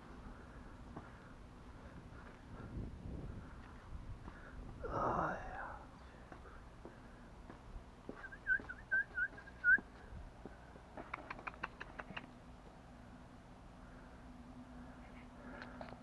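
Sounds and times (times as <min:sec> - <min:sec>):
person whistling short notes: 0:08.2 - 0:09.8.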